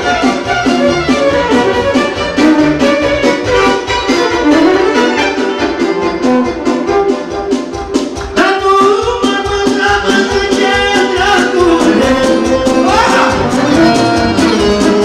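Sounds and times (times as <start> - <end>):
violin: 0.0 - 8.3, 11.8 - 15.0
steady driving beat: 0.0 - 15.0.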